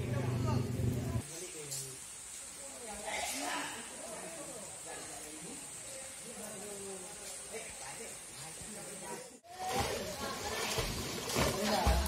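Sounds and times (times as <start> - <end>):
steady high hiss: 0.2 - 9.5.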